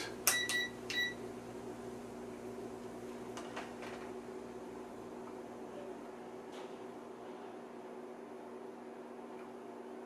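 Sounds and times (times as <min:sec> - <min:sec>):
computer electrical hum and fan: 0:00.0 - 0:10.0.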